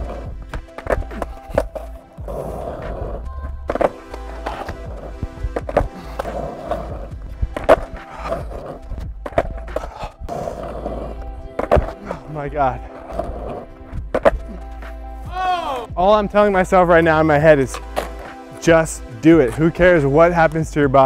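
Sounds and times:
skateboard clacks: 0.0 - 2.0, 2.7 - 10.5
skateboard wheels rolling on asphalt: 0.0 - 15.2, 16.3 - 21.0
background music: 0.0 - 21.0.

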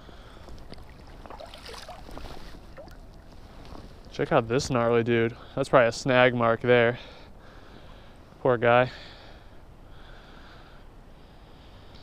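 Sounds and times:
creek water running: 0.3 - 3.9
small water splashes: 0.5 - 3.3.

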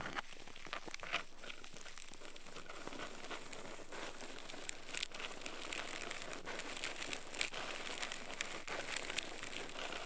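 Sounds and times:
bamboo stick scratching in ear: 0.0 - 10.0.

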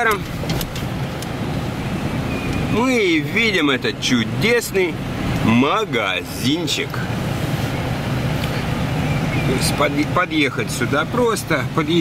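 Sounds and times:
car engine hum: 0.0 - 12.0
road noise rushing: 0.0 - 12.0.

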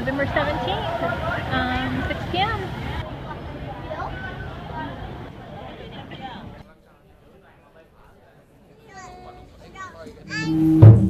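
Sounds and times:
people chatting: 0.0 - 11.0.

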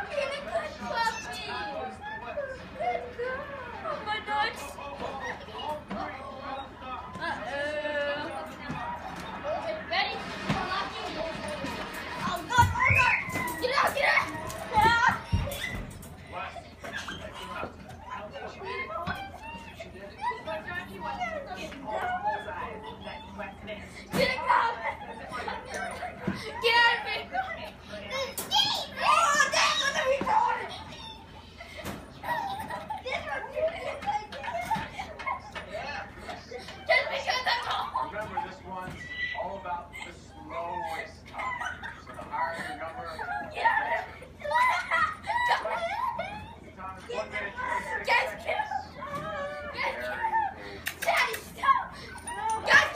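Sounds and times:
young children chattering: 0.0 - 52.9
children's high-pitched cries: 12.0 - 16.1, 18.7 - 46.8.

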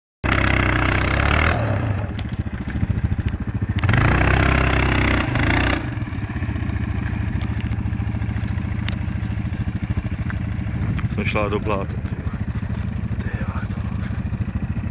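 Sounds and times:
quad bike engine revving: 0.2 - 14.9.

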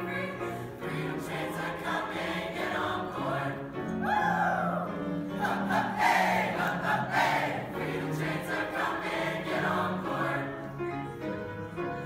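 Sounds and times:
choir singing in parts: 0.0 - 10.8.

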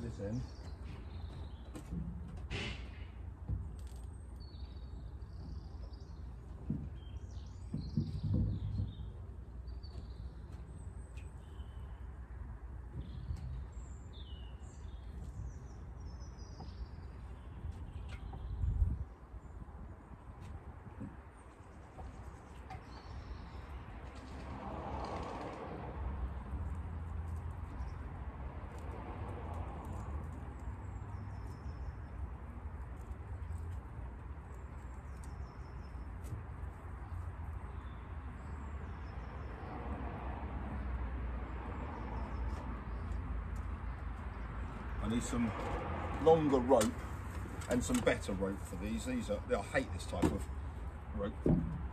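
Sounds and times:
birds chirping: 0.0 - 2.0, 3.6 - 20.4, 41.8 - 51.4.

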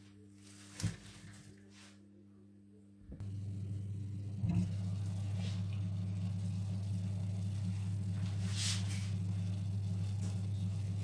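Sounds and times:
water boiling in pot: 3.2 - 11.0.

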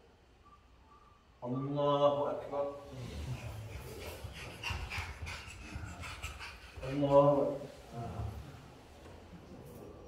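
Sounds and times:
soft breathing: 2.8 - 9.4
faint whispering: 2.8 - 10.0.

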